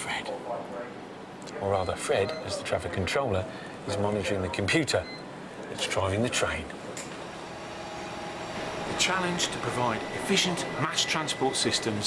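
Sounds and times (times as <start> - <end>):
train electric hum: 7.2 - 12.0.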